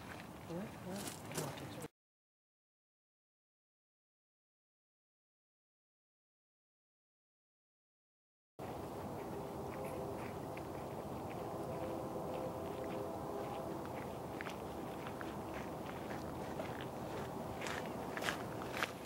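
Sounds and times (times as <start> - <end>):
outdoor background noise: 0.0 - 1.9, 8.6 - 19.0
faint low hum: 8.6 - 18.9.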